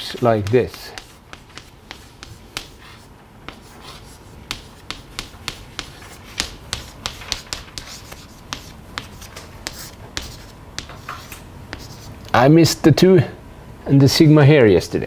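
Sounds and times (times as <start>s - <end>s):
chalk tapping and scratching on blackboard: 0.0s - 12.3s.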